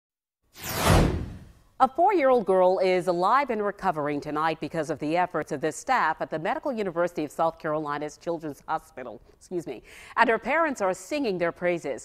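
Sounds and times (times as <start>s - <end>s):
whoosh sound effect: 0.6s - 1.6s.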